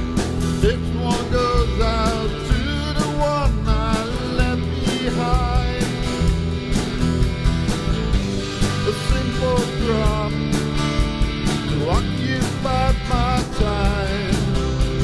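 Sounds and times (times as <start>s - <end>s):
acoustic guitar strumming: 0.0s - 15.0s
drum kit beat: 0.0s - 15.0s
electric guitar: 0.0s - 15.0s.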